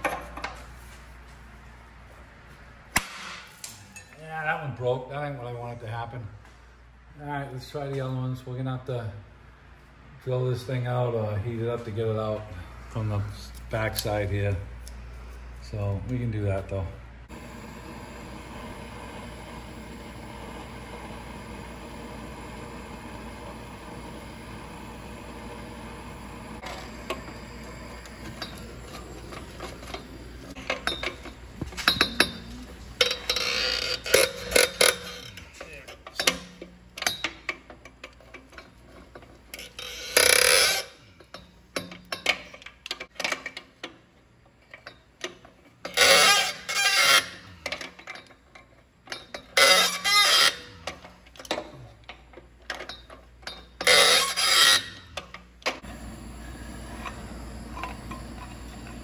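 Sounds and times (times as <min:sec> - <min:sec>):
gas torch hissing: 0:17.3 - 0:33.2, 0:55.8 - 0:59.0
metal tools clinking on bolts: 0:28.2 - 0:43.9, 0:44.6 - 0:55.4.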